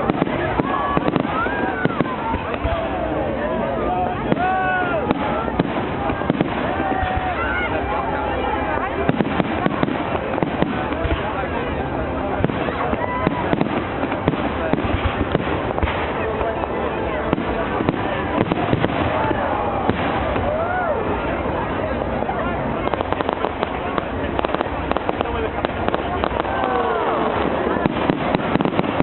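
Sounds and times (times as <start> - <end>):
fireworks bursting: 0.0 - 3.2, 4.0 - 22.0, 22.6 - 29.0
crowd chatter: 0.0 - 29.0.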